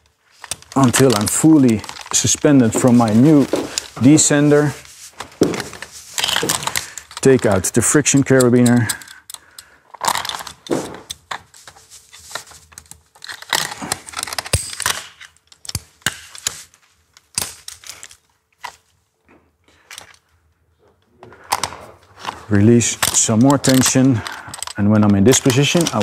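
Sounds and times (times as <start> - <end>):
metal carabiners clinking: 0.3 - 4.8, 5.4 - 11.4, 22.5 - 26.0.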